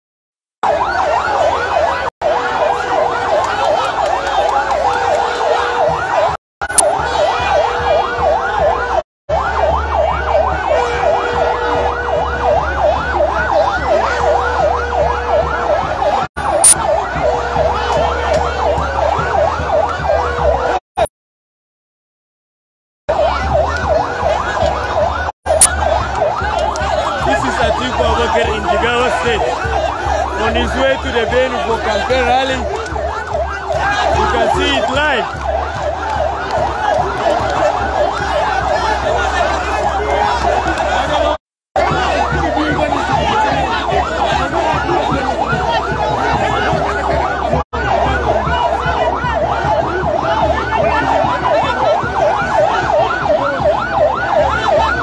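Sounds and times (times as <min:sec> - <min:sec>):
crowd cheering and shouting: 0:00.6 - 0:20.8, 0:23.1 - 0:55.0
rising and falling siren wail: 0:00.6 - 0:20.8, 0:23.1 - 0:55.0
held horn-like tone: 0:10.6 - 0:12.3.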